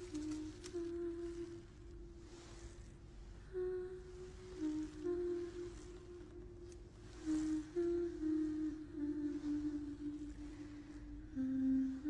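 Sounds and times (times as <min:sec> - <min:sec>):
person humming a slow tune: 0:00.0 - 0:12.0.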